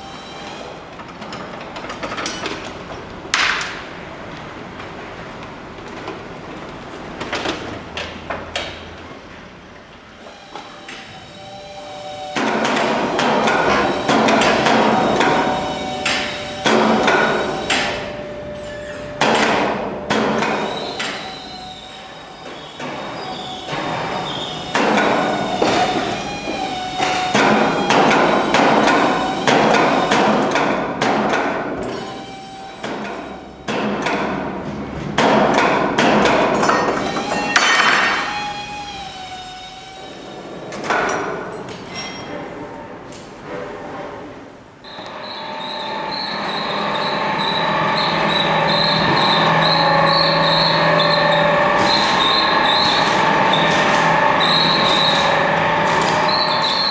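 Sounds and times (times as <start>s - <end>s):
air tool running in bursts: 10.2s - 18.1s, 23.7s - 30.4s, 37.0s - 40.5s, 44.9s - 56.9s
sharp metal knocks and clanks: 12.4s - 21.2s, 32.8s - 38.3s.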